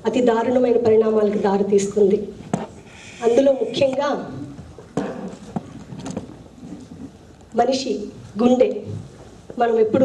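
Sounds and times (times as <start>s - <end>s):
woman speaking: 0.0s - 2.4s, 3.2s - 4.6s, 7.5s - 9.0s, 9.6s - 10.0s.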